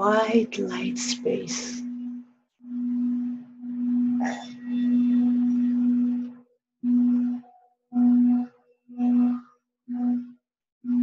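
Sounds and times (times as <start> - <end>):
singing bowl low tone: 0.0 - 11.0.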